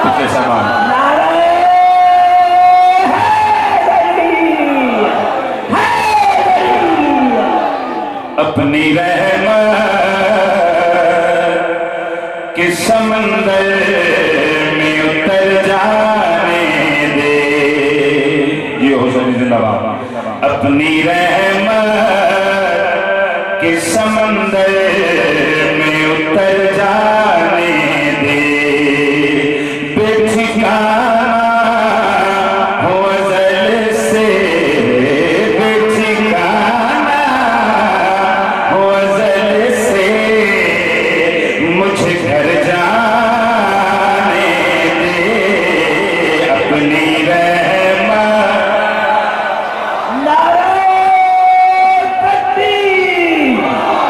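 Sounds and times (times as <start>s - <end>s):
man chanting into a microphone: 0.0s - 54.0s.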